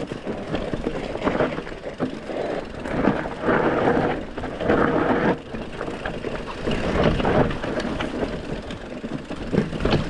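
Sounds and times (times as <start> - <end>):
bike rattling: 0.0 - 10.0
bike tyres crunching over stone: 0.0 - 10.0.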